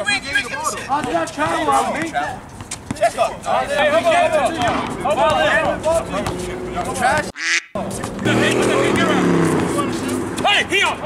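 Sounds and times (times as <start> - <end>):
vehicle engine passing: 4.5 - 11.0.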